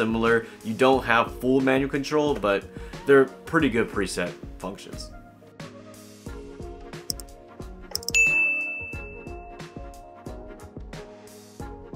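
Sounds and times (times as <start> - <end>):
background music with beat: 0.0 - 11.9
click: 7.1 - 7.3, 7.9 - 8.2
bell ding notification: 8.0 - 9.8.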